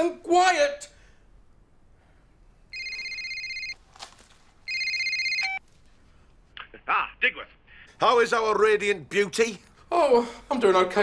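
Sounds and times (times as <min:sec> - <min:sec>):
mobile phone ringing: 0:02.7 - 0:03.8, 0:04.7 - 0:05.6.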